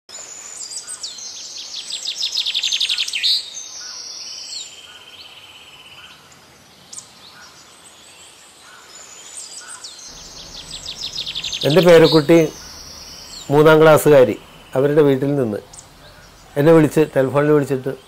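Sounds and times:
birds chirping and trilling: 8.6 - 18.0.

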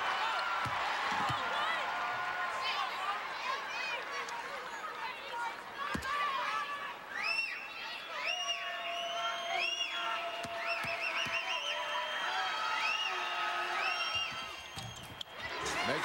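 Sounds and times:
crowd whooping and whistling: 0.0 - 4.0, 6.6 - 16.0
crowd noise: 0.0 - 16.0.

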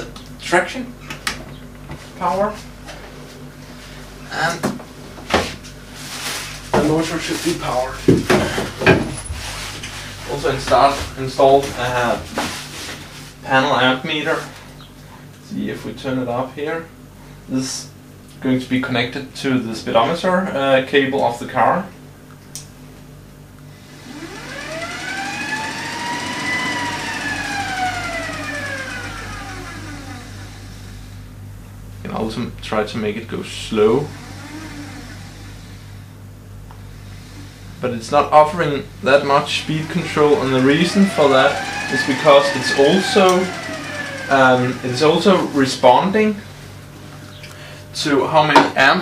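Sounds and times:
steady low hum: 0.0 - 49.0
electric motor whine: 23.7 - 31.3, 34.0 - 36.1, 39.2 - 46.9.

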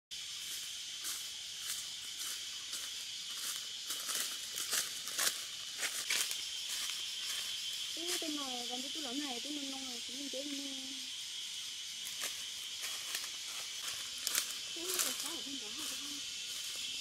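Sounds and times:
high-pitched insect drone: 0.1 - 17.0.

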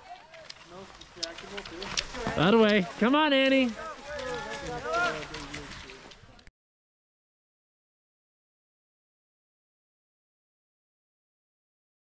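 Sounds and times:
people calling out: 2.1 - 5.7.

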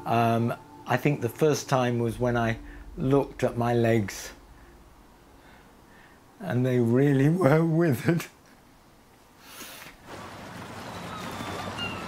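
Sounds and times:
wind and water: 10.0 - 12.0
faint bird calls: 10.8 - 12.0.

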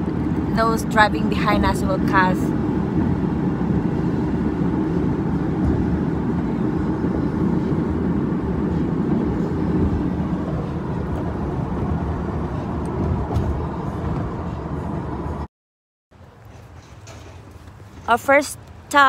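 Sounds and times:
car road and engine rumble: 0.0 - 15.5.

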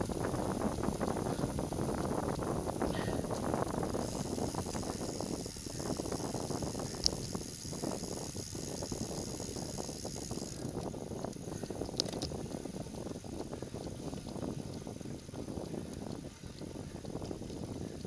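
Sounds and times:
bicycle tyres rolling: 0.0 - 18.0
wind rushing over microphone: 0.0 - 18.0.

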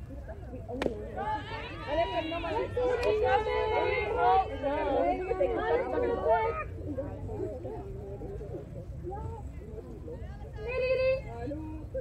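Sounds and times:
voices calling out and chattering: 0.0 - 12.0.

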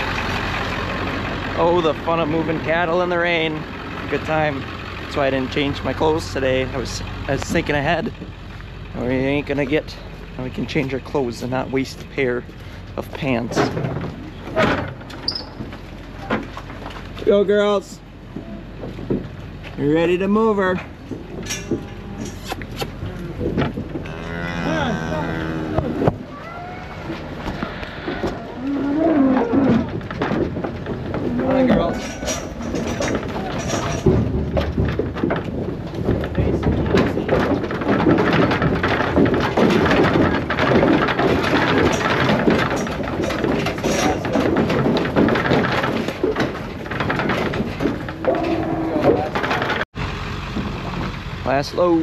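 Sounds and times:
hooves clattering on metal floor: 0.0 - 17.4, 18.3 - 49.9
cattle mooing: 21.6 - 23.4, 24.0 - 26.2, 27.6 - 29.9, 48.2 - 49.4.

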